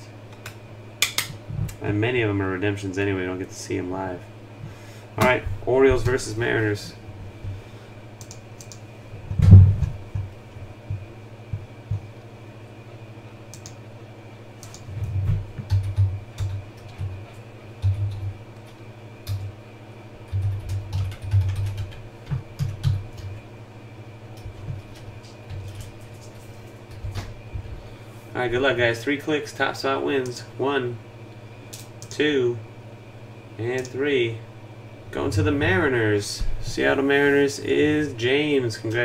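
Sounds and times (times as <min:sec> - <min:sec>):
computer keyboard typing: 0:08.2 - 0:08.8, 0:14.6 - 0:17.2, 0:17.8 - 0:18.3, 0:19.2 - 0:19.5, 0:20.2 - 0:23.4, 0:24.4 - 0:27.2.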